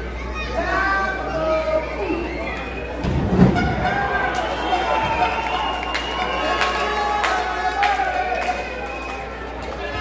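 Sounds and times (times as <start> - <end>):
crowd shouting: 2.0 - 9.1.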